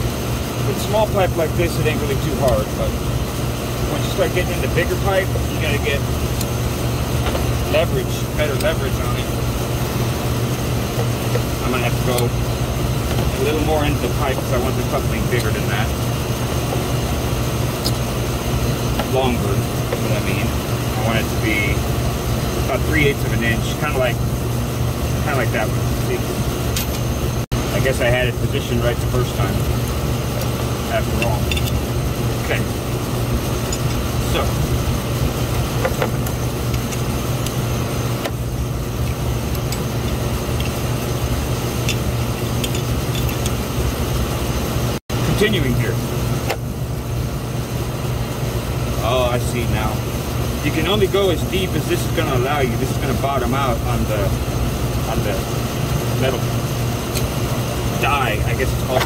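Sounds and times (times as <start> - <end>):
low machinery drone: 0.0 - 59.0
refrigeration equipment humming: 0.0 - 59.0.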